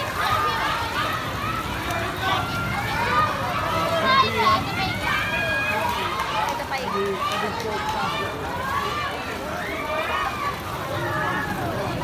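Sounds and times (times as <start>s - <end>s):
spectators shouting encouragement: 0.0s - 12.0s.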